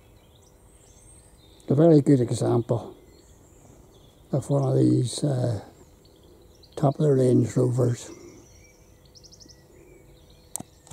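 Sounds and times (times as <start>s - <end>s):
faint outdoor ambience: 0.0s - 10.9s
small bird chirping: 0.0s - 10.9s.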